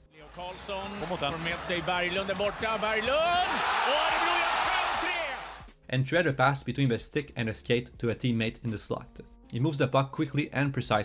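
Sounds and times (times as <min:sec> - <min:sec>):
crowd cheering: 0:00.0 - 0:05.7.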